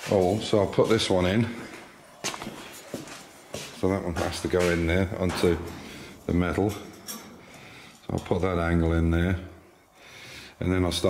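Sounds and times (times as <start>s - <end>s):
man speaking: 0.0s - 1.8s, 3.7s - 7.0s, 8.0s - 9.6s, 10.6s - 11.0s.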